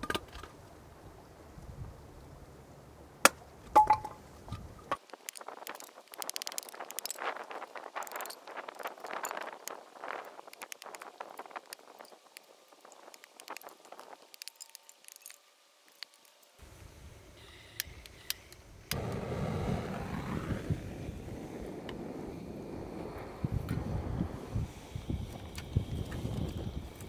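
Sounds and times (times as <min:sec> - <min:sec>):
rapid crackling and tapping: 0:05.0 - 0:16.4.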